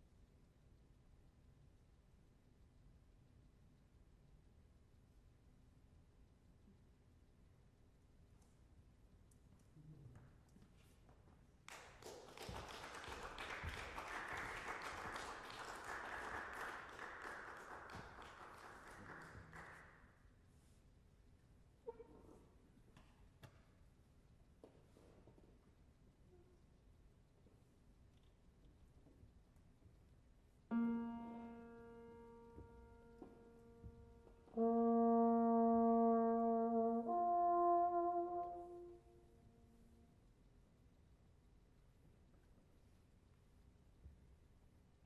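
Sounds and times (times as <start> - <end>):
audience applause: 12.0 - 19.9
piano note: 30.7 - 39.0
trombone holding notes: 30.7 - 39.8.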